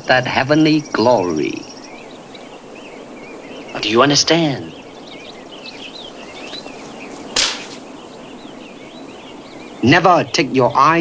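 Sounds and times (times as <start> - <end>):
birds chirping: 0.0 - 11.0
hand slapping head: 7.4 - 7.8.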